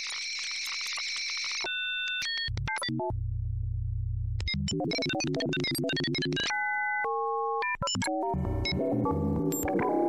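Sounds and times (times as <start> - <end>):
high-pitched electronic chirping crackle: 0.0 - 2.6.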